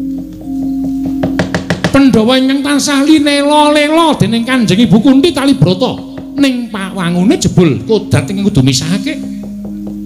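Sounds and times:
soft gamelan music: 0.0s - 10.0s
sharp wooden knocks: 0.2s - 2.3s.

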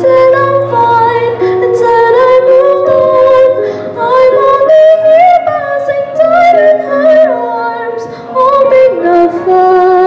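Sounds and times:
electric keyboard: 0.0s - 10.0s
woman singing into microphone: 0.0s - 10.0s.

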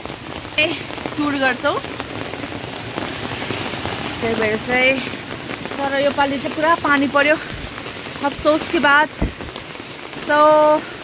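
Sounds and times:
rain on umbrellas: 0.0s - 11.0s.

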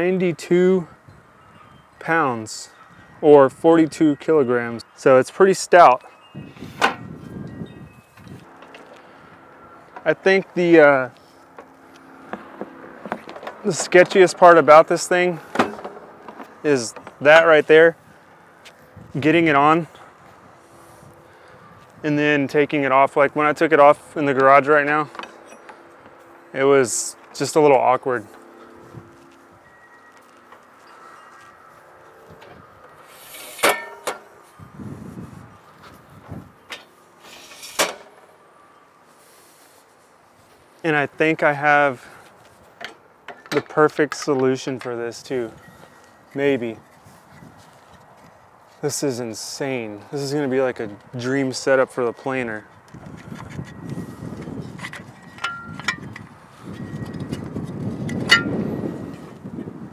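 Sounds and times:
metal clinking with ringing tone: 25.1s - 27.0s, 55.2s - 56.1s
metal arms sliding out: 33.0s - 34.3s, 37.2s - 38.2s
sharp metal clack: 33.4s - 34.3s, 58.1s - 58.6s.

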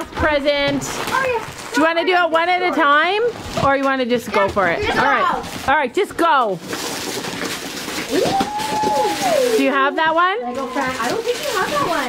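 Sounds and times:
wrapping paper tearing and crinkling: 0.0s - 5.8s, 6.4s - 12.0s
person's long held ooh: 8.1s - 9.6s.

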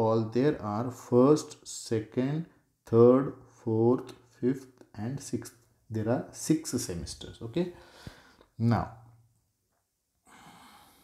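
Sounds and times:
person exhaling softly: 10.2s - 11.0s.

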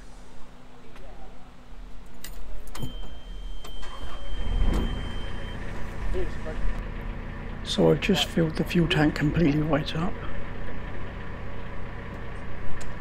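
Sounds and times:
high beep: 2.8s - 5.8s
diesel engine idling: 3.7s - 13.0s.

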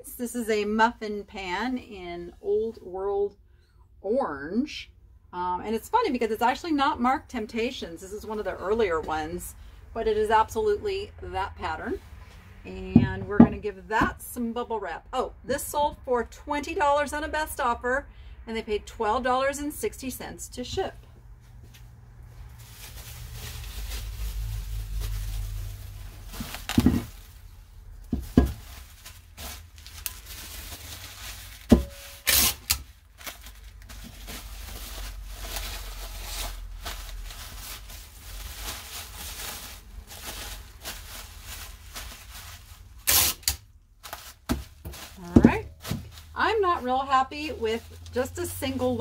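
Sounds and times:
bubble wrap rustling: 21.4s - 49.0s.

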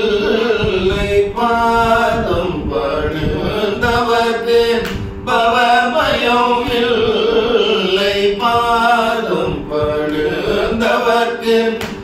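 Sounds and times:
steady low drone: 0.0s - 12.0s
two men singing: 0.0s - 12.0s.

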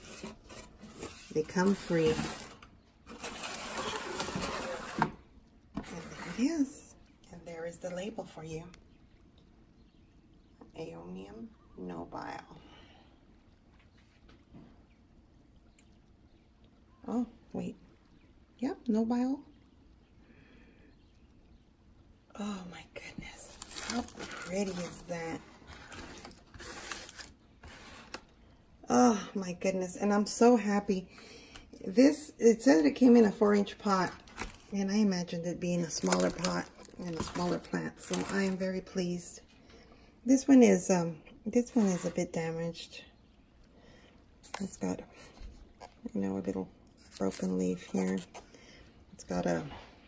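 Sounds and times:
pots rustling in cardboard box: 0.0s - 6.8s, 23.4s - 28.3s, 33.8s - 34.8s, 35.7s - 39.0s, 41.6s - 42.4s.

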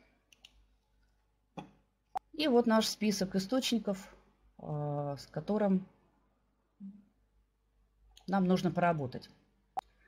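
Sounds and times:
computer mouse clicks: 0.3s - 0.6s.

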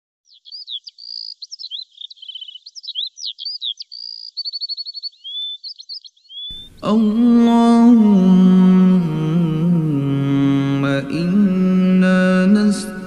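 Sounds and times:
songbird singing: 0.2s - 13.0s.

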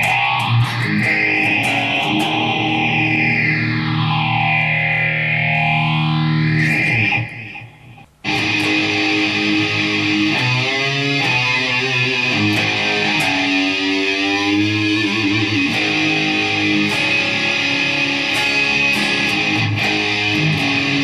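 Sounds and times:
distorted electric guitar sweeping effect: 0.0s - 21.0s.

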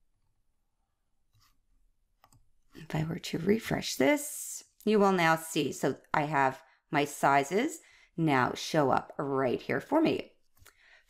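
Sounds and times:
computer mouse clicks: 2.2s - 2.5s
woman speaking: 2.8s - 10.3s.

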